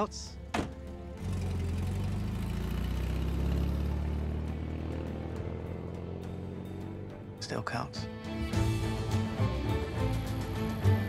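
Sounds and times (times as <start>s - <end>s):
car engine rumbling: 0.0s - 11.0s
film score music: 0.0s - 11.0s.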